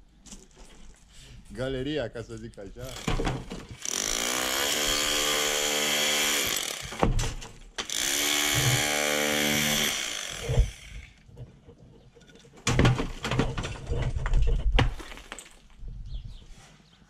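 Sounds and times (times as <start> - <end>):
thud: 6.9 - 7.6, 12.6 - 15.5.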